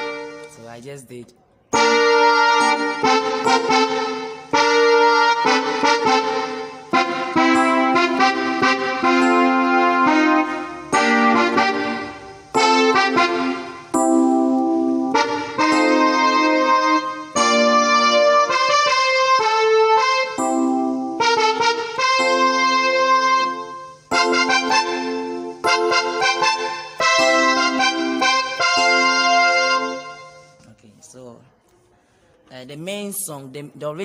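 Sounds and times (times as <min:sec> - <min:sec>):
electronic keyboard block chords: 0:00.0 - 0:30.7.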